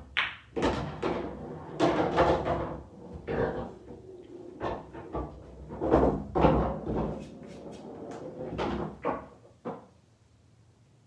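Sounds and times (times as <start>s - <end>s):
irregular knocks and thuds: 4.6s - 9.9s.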